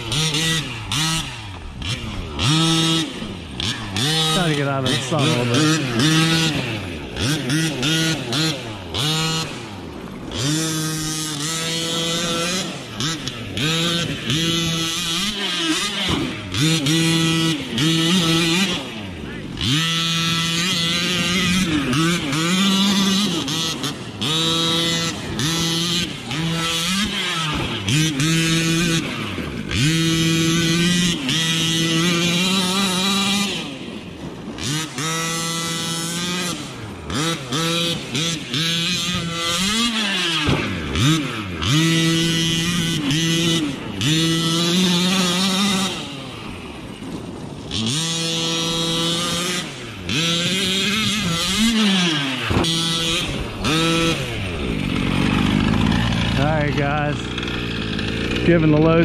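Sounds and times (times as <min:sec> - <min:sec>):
two-stroke engine revving: 0:00.0 - 0:59.0.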